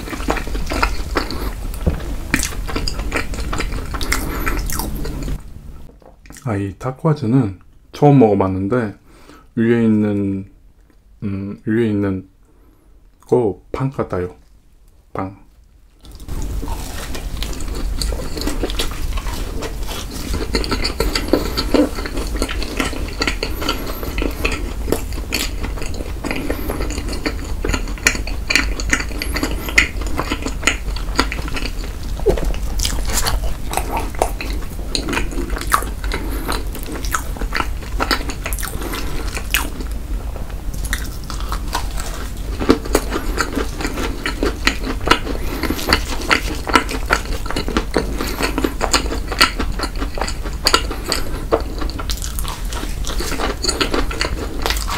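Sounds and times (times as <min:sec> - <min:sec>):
mouth chewing clicks and smacks: 0:00.0 - 0:05.4, 0:16.0 - 0:39.9, 0:40.8 - 0:54.9
steady low hum: 0:00.0 - 0:54.9.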